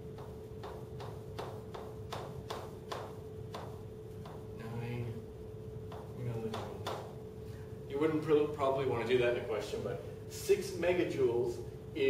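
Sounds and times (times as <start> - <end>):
chalk tapping on blackboard: 0.0 - 4.6, 5.9 - 7.2
faint steady hum: 0.0 - 12.0.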